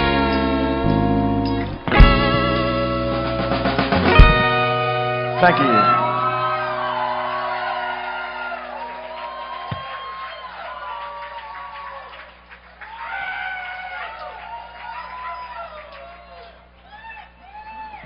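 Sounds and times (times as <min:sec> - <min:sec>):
electric guitar chord ringing out: 0:00.0 - 0:09.4
audience cheering and whooping: 0:05.2 - 0:18.0.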